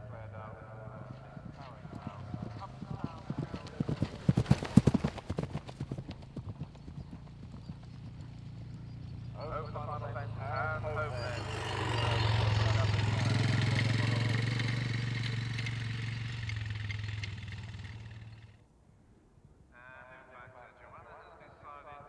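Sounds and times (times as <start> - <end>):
horse galloping on turf: 0.8 - 9.0.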